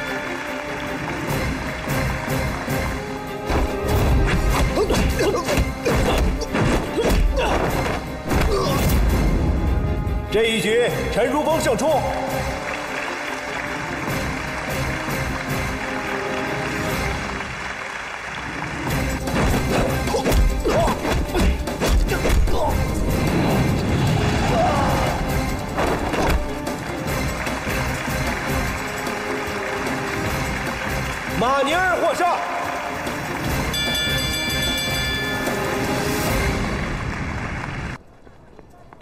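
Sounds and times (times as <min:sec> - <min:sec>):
dramatic orchestral film music: 0:00.0 - 0:38.0.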